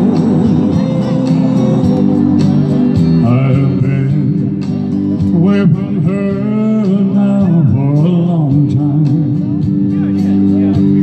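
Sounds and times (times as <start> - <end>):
backing music: 0.0 - 11.0
man singing into microphone: 0.0 - 11.0.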